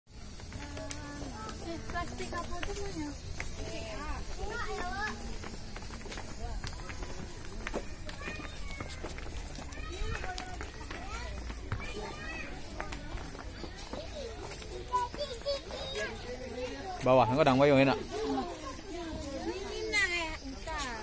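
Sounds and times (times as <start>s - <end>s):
crowd chattering and calling: 0.1s - 21.0s.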